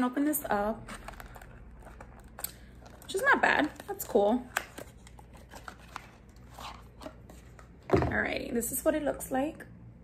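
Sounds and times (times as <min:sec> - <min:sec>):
packaging rustling and scraping: 0:00.7 - 0:07.9.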